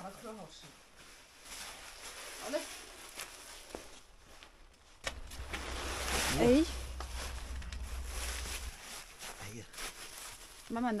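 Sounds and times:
cabbage leaves rustling: 1.1 - 4.4, 5.2 - 11.0.

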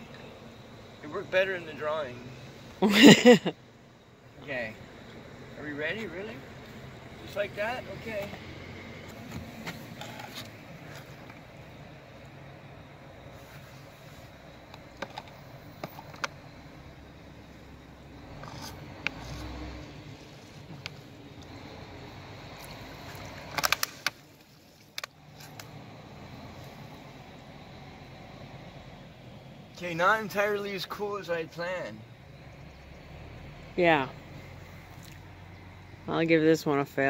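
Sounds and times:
low background rumble: 0.0 - 37.0
sharp clicks: 22.6 - 25.8.

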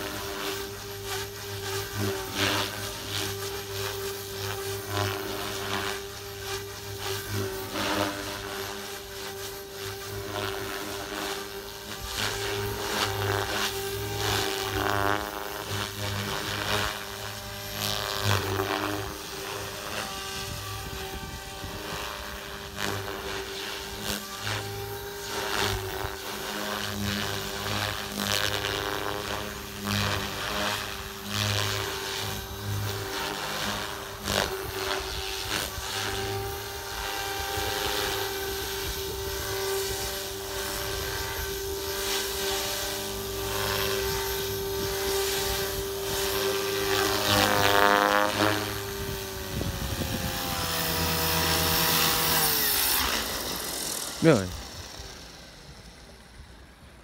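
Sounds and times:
rc helicopter rotor whine: 0.0 - 57.0
wind buffeting microphone: 20.1 - 22.1, 48.5 - 52.4.

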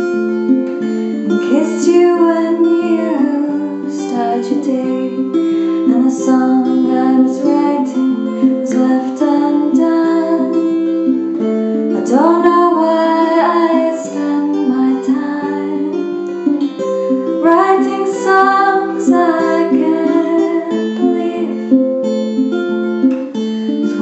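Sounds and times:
picked tenor guitar: 0.0 - 24.0
woman singing: 0.6 - 22.2.

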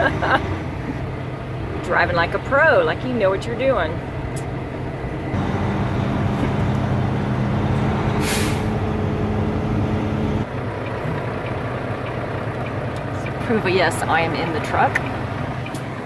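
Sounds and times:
truck diesel engine: 0.0 - 16.0
air brake hiss: 8.2 - 8.8.

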